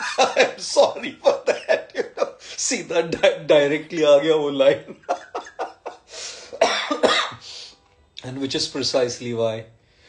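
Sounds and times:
man coughing: 0:00.0 - 0:02.6, 0:05.2 - 0:07.4.

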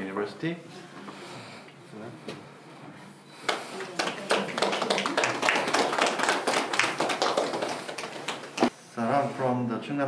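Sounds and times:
people clapping: 0:03.4 - 0:08.7.

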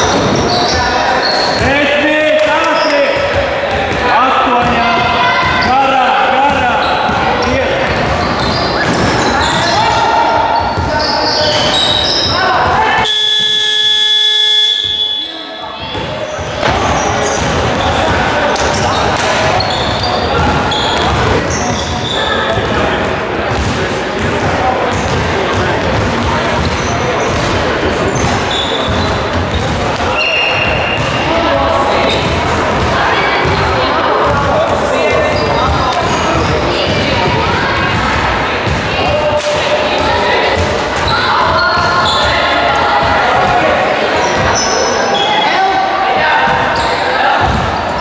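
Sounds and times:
chatter of players and spectators: 0:00.0 - 0:48.0
basketballs bouncing on wooden floor: 0:02.4 - 0:05.7, 0:06.4 - 0:10.0, 0:15.9 - 0:39.3, 0:47.4 - 0:48.0
scoreboard buzzer: 0:13.0 - 0:15.6.

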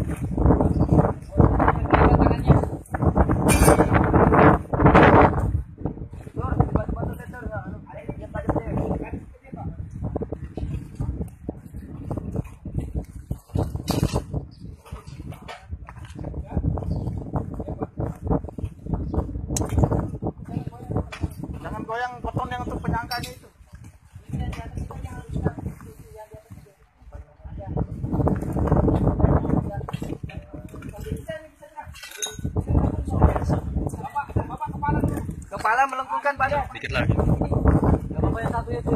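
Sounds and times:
voices: 0:29.5 - 0:38.9.

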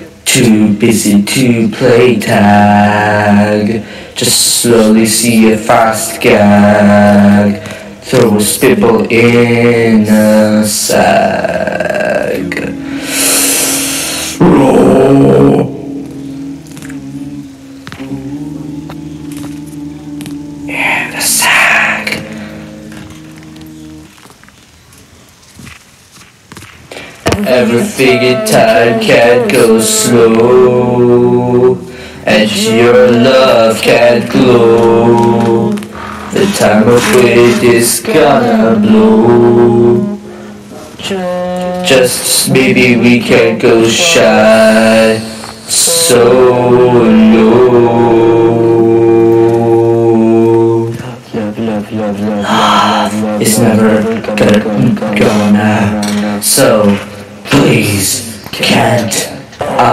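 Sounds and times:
sustained sung note: 0:11.0 - 0:24.3, 0:27.3 - 0:50.7, 0:51.4 - 0:56.8.

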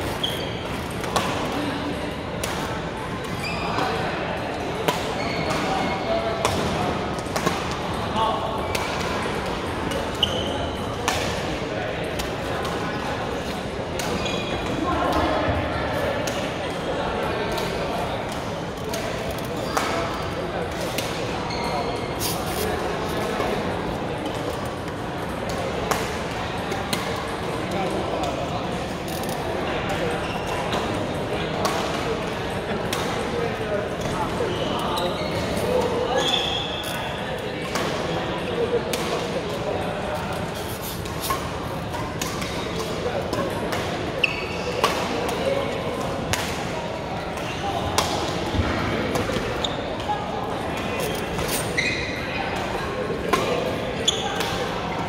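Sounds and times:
hubbub of voices in hall: 0:00.0 - 0:55.0
brief high squeak: 0:00.2 - 0:00.6, 0:36.1 - 0:36.9, 0:51.5 - 0:52.2
racket hitting shuttlecock: 0:41.0 - 0:44.0, 0:44.8 - 0:45.4.

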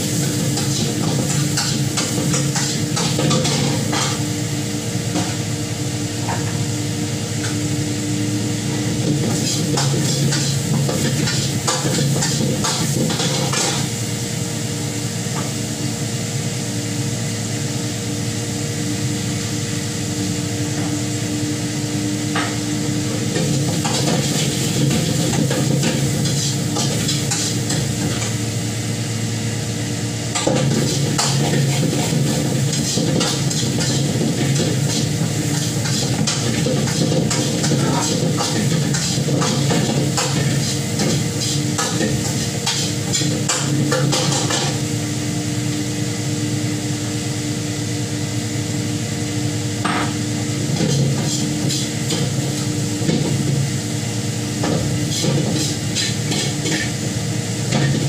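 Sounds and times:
food sizzling: 0:00.0 - 0:04.8, 0:21.6 - 0:28.6, 0:30.2 - 0:45.0
gas flame: 0:00.0 - 0:16.7, 0:19.2 - 0:46.1, 0:49.7 - 0:58.0
kitchen hum: 0:00.0 - 0:58.0
spatula scraping in a wok: 0:23.4 - 0:28.4, 0:30.4 - 0:44.7, 0:50.9 - 0:52.4, 0:55.0 - 0:57.0.

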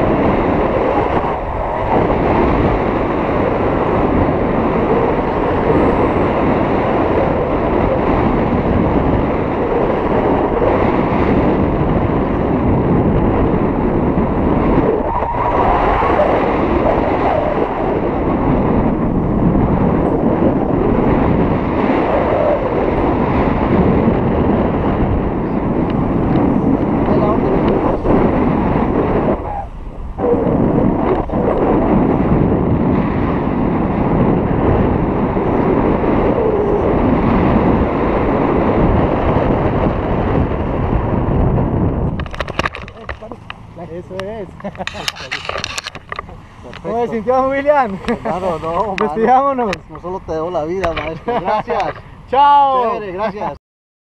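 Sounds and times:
wind roaring over microphone: 0:00.0 - 0:53.6.

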